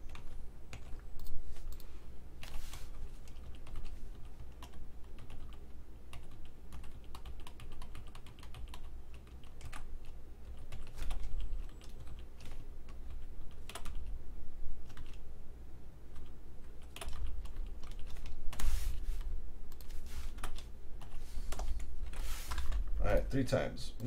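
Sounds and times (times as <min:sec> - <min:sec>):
computer keyboard typing: 0:00.0 - 0:14.1, 0:14.8 - 0:15.2, 0:16.1 - 0:18.7, 0:19.7 - 0:22.8.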